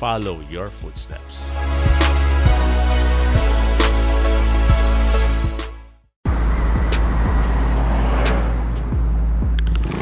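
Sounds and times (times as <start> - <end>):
road traffic rumble: 6.2 - 10.0.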